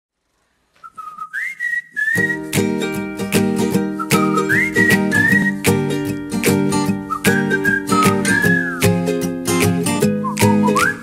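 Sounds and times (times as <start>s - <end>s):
whistled melody: 0.8s - 11.0s.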